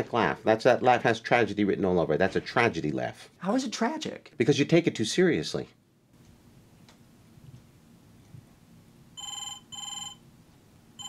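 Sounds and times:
telephone double ring: 9.2s - 10.2s.

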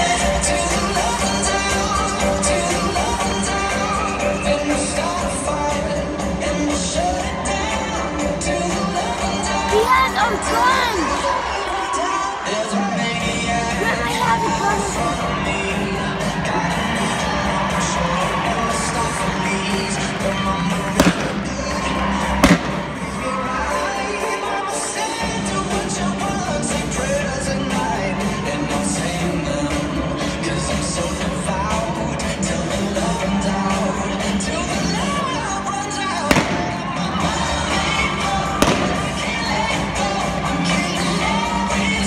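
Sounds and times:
crowd noise: 0.0s - 42.0s
arena music: 9.2s - 12.0s, 13.4s - 17.4s, 18.4s - 26.6s, 34.3s - 42.0s
revolver shots: 21.0s - 21.8s, 22.4s - 23.2s, 36.3s - 37.2s, 38.6s - 39.5s
sharp bangs: 21.0s - 21.8s, 22.4s - 23.2s, 36.3s - 37.1s, 38.6s - 39.4s.

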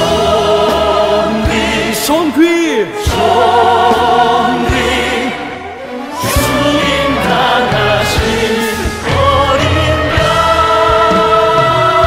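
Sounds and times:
choir singing sustained notes: 0.0s - 2.2s, 3.0s - 12.0s
band with bass and drums: 6.2s - 12.0s.

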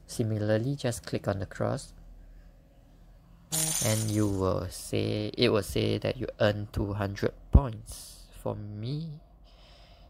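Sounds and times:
faint low room hum: 0.0s - 10.0s
man speaking: 3.6s - 9.2s.

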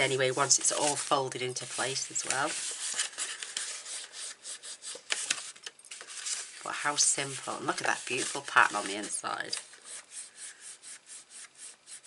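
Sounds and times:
paper rubbing and scraping: 0.0s - 12.0s.

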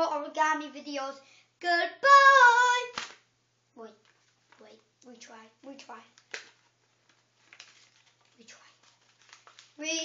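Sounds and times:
paper banger snap: 2.8s - 3.3s, 4.5s - 8.1s.

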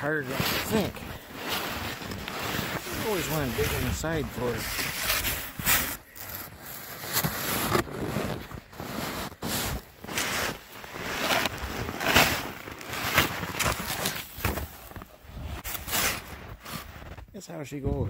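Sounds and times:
snow scoop scraping snow: 0.0s - 17.1s.

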